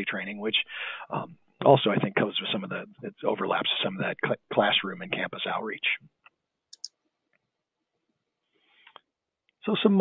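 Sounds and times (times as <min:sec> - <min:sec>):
computer mouse clicks: 0:06.2 - 0:07.0.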